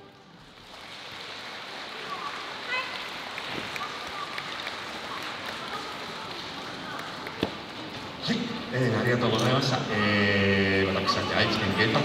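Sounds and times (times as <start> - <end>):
crowd chatter: 0.0 - 12.0
audience applause: 0.5 - 7.4.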